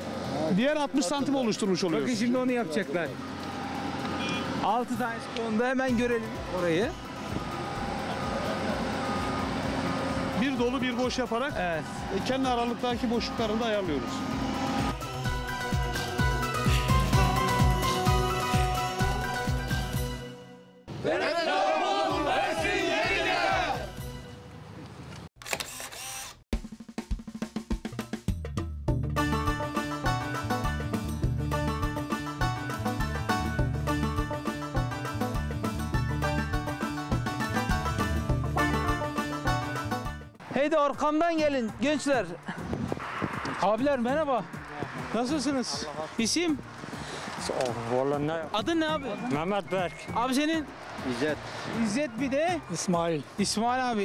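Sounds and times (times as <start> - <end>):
background music with steady beat: 4.9 - 20.4, 26.6 - 40.4
excavator engine running: 6.4 - 15.4
group of men shouting: 21.0 - 24.0.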